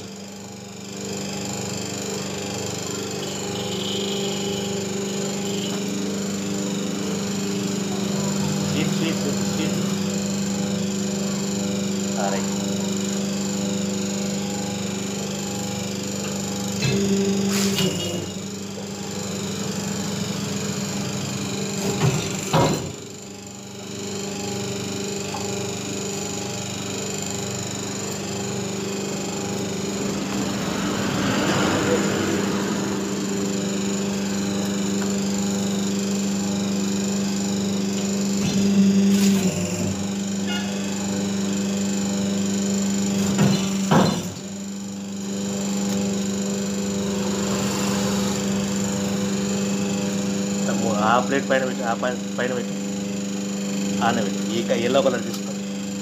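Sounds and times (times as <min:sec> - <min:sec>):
hydraulic press motor humming: 0:00.0 - 0:56.0.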